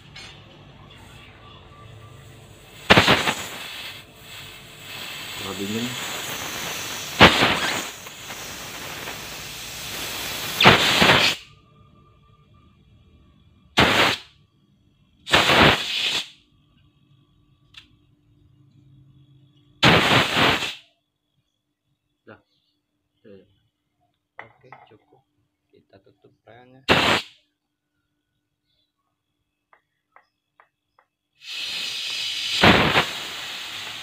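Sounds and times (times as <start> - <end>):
faint steady hum: 0.0 - 15.3
pressurized gas hissing from pipe: 2.5 - 11.5, 13.8 - 14.3, 15.3 - 16.4, 19.8 - 20.8, 26.9 - 27.3, 31.4 - 34.0
short gas blasts: 2.5 - 11.5, 13.8 - 14.3, 15.3 - 16.4, 19.8 - 20.8, 26.9 - 27.4, 31.4 - 34.0.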